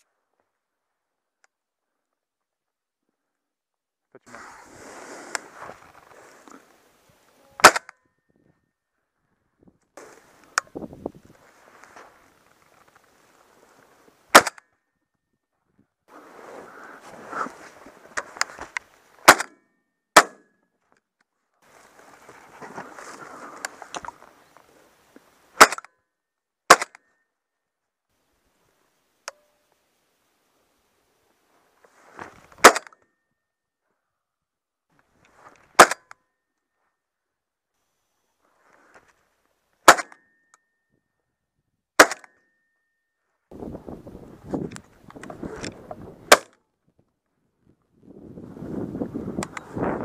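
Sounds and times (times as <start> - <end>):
shotgun shots: 7.6 - 7.9, 14.3 - 14.6, 19.2 - 19.6, 25.6 - 25.9, 26.7 - 27.0, 32.6 - 32.9, 35.8 - 36.0, 39.9 - 40.2, 42.0 - 42.3
faint rustling: 10.0 - 14.2, 21.6 - 25.4.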